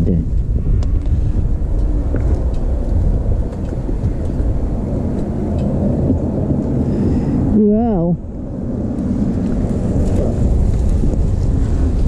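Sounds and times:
motorcycle engine rumbling: 0.0 - 12.0
wind on microphone: 0.0 - 12.0.

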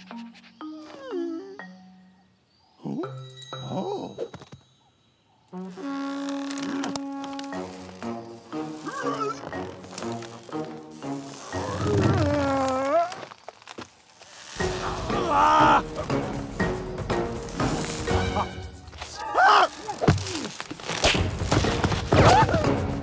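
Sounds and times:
cartoon background music: 0.0 - 4.4, 5.5 - 13.0, 14.5 - 20.0, 21.0 - 23.0
sliding wordless cries: 14.6 - 16.8, 17.5 - 20.7.

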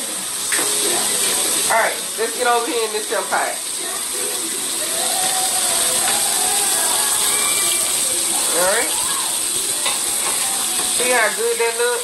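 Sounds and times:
food sizzling in pan: 0.0 - 12.0.

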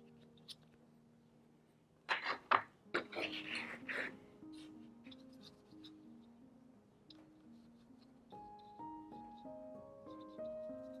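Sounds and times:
soft background music: 0.0 - 11.0
paintbrush scratching on paper: 2.1 - 6.3, 7.4 - 11.0.

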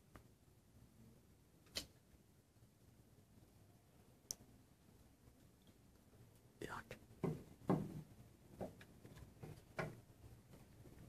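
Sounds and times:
whispered voices: 6.6 - 7.0.

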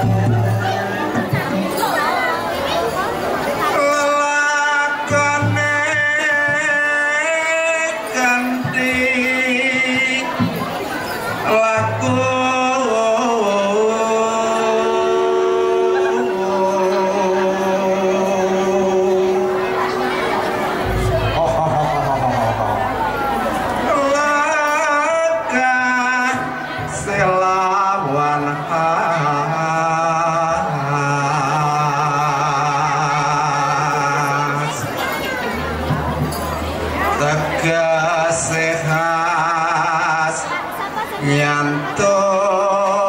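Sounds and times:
voice chanting long notes: 11.4 - 34.9.

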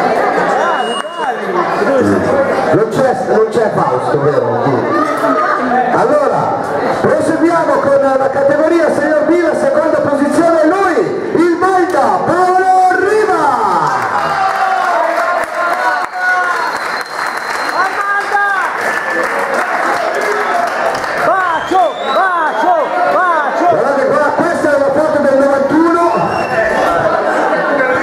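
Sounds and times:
applause: 13.8 - 21.7.

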